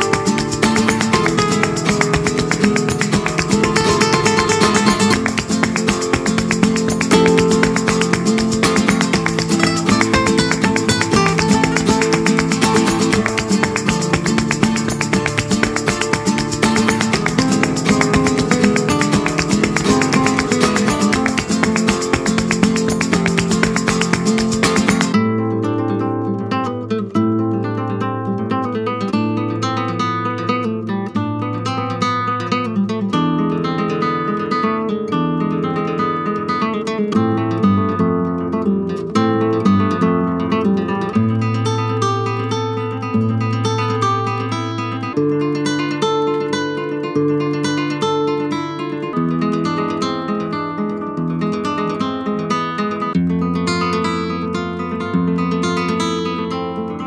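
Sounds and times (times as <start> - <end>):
acoustic guitar music: 0.0 - 57.0.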